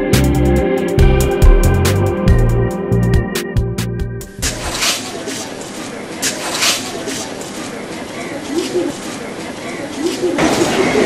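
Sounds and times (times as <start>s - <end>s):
bird cooing: 4.8s - 11.0s.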